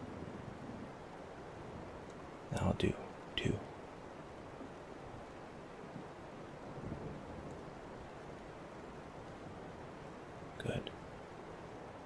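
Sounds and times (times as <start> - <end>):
heavy rain hiss: 0.0 - 12.0.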